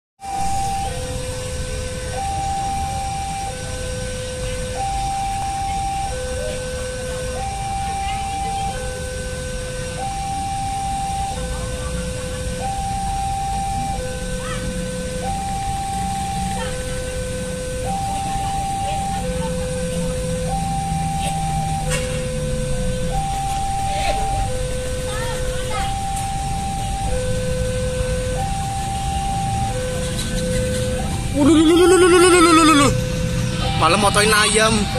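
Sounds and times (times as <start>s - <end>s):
level crossing alarm two-tone: 0.2s - 34.9s
low traffic rumble: 0.2s - 34.9s.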